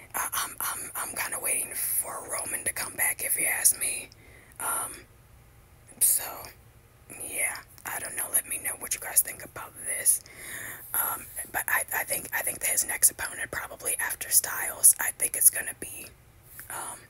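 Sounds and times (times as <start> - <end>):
person whispering: 0.0 - 5.0, 6.0 - 10.2, 10.9 - 17.0.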